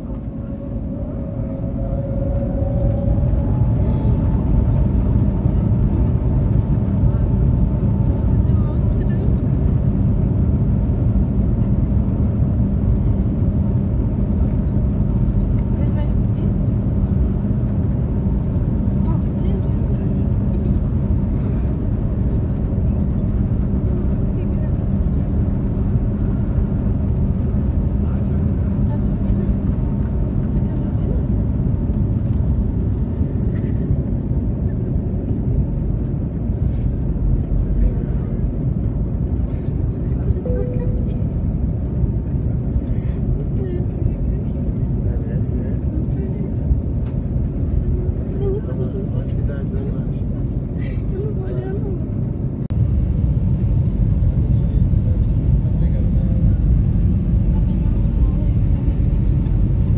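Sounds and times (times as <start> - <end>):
jet engines rumbling and whining: 0.0 - 59.9.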